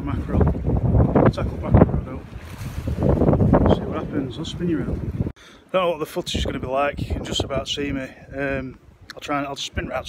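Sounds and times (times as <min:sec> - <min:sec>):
wind buffeting the microphone: 0:00.0 - 0:05.4, 0:06.2 - 0:10.0.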